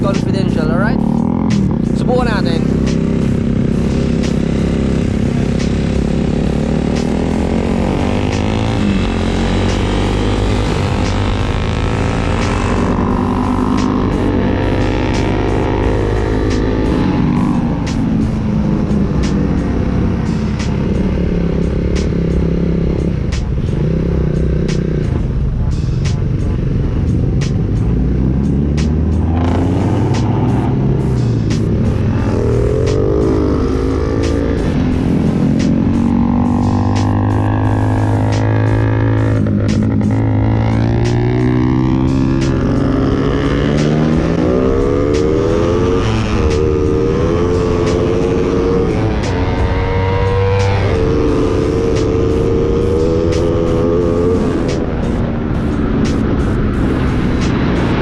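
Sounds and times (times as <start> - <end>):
motorcycle engines at full throttle: 0.0 - 58.0.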